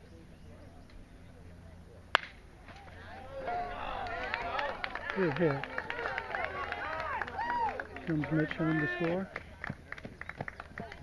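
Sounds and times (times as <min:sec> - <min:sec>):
bat cracking a ball: 0:02.1 - 0:03.1
spectators' voices rising: 0:02.7 - 0:09.2.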